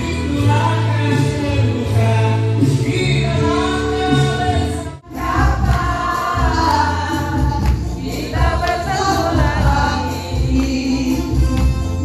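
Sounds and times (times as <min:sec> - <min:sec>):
backing music with bass beat: 0:00.0 - 0:12.0
several voices singing: 0:00.0 - 0:12.0.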